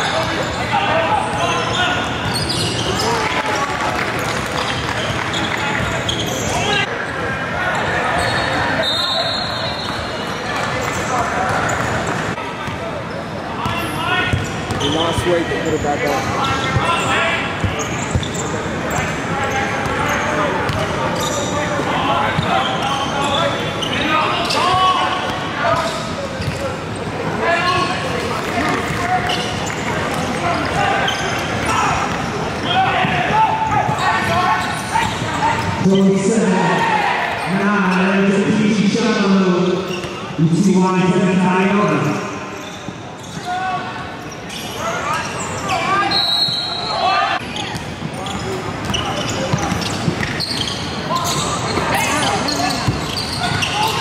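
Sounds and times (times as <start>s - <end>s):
players and spectators shouting: 26.8s - 42.6s, 43.4s - 48.4s.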